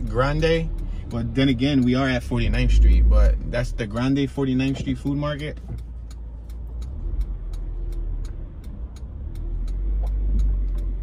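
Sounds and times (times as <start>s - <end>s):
car engine idling: 0.0s - 11.0s
cars passing: 0.0s - 11.0s
light steady ticking: 0.0s - 11.0s.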